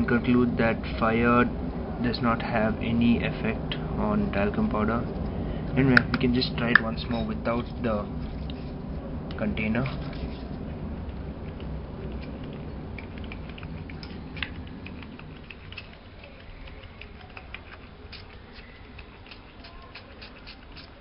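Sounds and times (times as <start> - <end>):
low steady hiss: 0.0 - 21.0.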